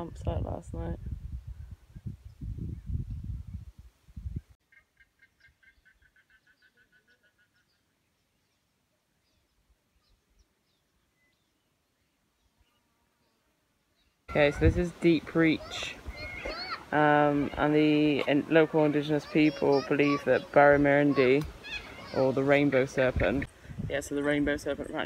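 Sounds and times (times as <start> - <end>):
wind buffeting microphone: 0.0 - 4.6, 14.3 - 25.0.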